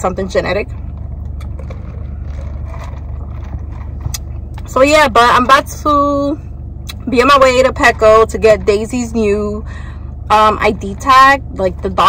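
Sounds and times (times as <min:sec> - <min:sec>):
car idling hum: 0:00.0 - 0:12.0.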